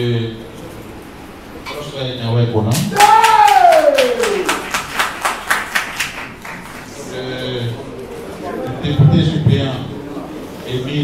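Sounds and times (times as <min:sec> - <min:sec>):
audience clapping: 0:02.7 - 0:07.1
long falling vocal cry: 0:02.9 - 0:04.6.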